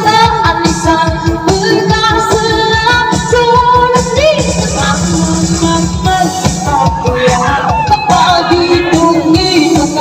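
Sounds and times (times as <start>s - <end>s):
backing music with steady beat: 0.0s - 10.0s
woman singing into microphone: 0.0s - 10.0s.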